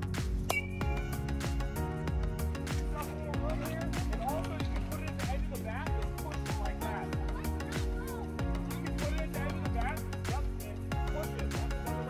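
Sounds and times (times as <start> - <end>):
bass: 0.0 - 12.0
drum beat: 0.3 - 11.9.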